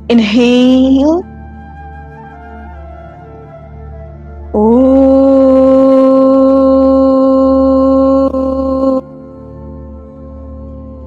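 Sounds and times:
woman chanting om: 0:00.0 - 0:01.3, 0:04.5 - 0:09.8
soft ambient music: 0:00.0 - 0:11.0.

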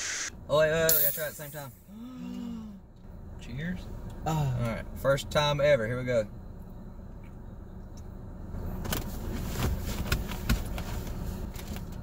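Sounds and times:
low rumble inside car: 0:00.3 - 0:12.0.

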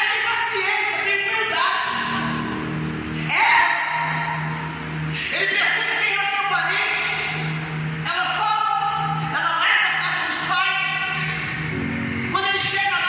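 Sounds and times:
electronic keyboard sustained chord: 0:00.0 - 0:13.0.

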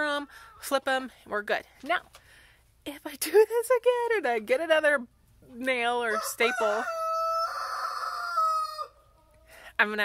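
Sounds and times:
rooster crowing: 0:06.1 - 0:09.0.

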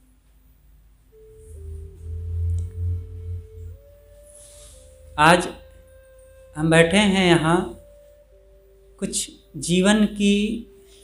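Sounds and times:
soft steady pure tone: 0:00.0 - 0:11.0
low rumble: 0:01.1 - 0:07.1.

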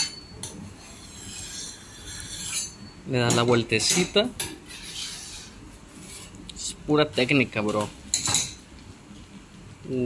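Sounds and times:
metal spatula scraping griddle: 0:00.6 - 0:02.9, 0:04.6 - 0:06.4.

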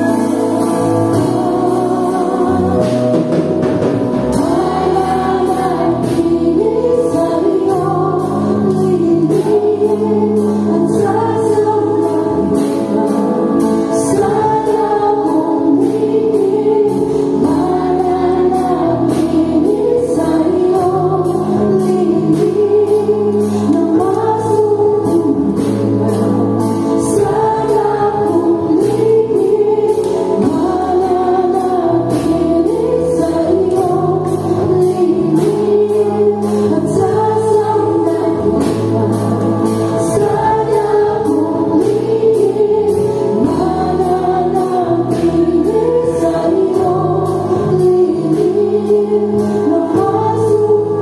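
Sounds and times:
singers: 0:00.0 - 0:51.0
steady drumbeat: 0:00.0 - 0:51.0
worship band playing gospel: 0:00.0 - 0:51.0.

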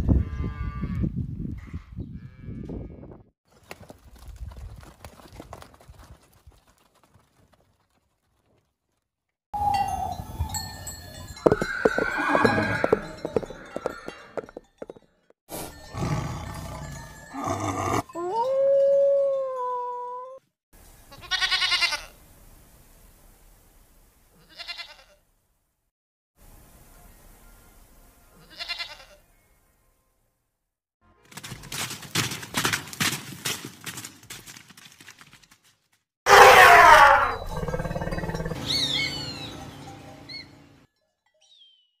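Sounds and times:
goat bleating: 0:21.1 - 0:22.1, 0:24.4 - 0:25.2, 0:28.4 - 0:29.2
animal growling: 0:36.3 - 0:38.6
long rising animal call: 0:36.3 - 0:39.1
zebra braying: 0:36.3 - 0:39.1.

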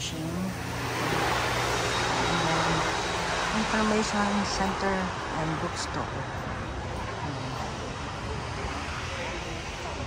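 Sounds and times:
faint voices talking: 0:00.0 - 0:10.0
outdoor background noise: 0:00.0 - 0:10.0.

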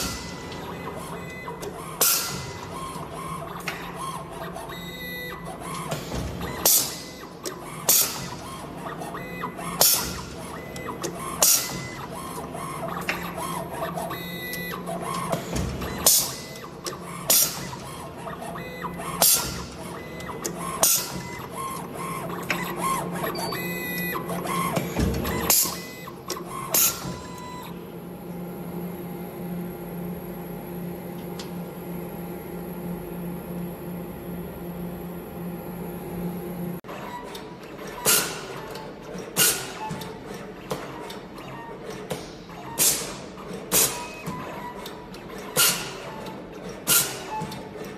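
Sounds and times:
steady machine hum: 0:00.0 - 0:36.8.

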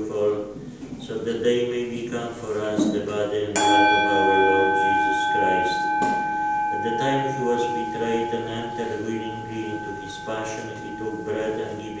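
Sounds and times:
bell ringing: 0:03.6 - 0:12.0.

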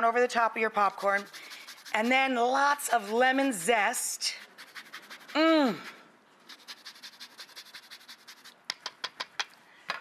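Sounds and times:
zester scraping rind: 0:00.8 - 0:03.7, 0:04.4 - 0:08.6.

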